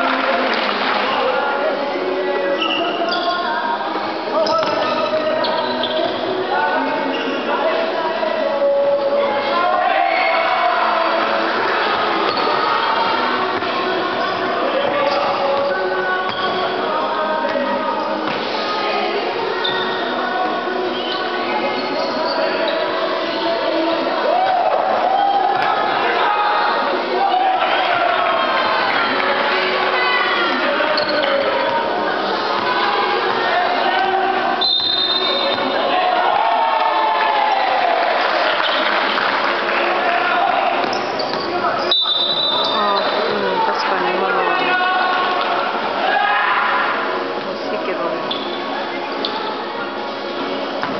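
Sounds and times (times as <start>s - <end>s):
voices talking and calling: 0.0s - 39.1s, 40.0s - 50.7s.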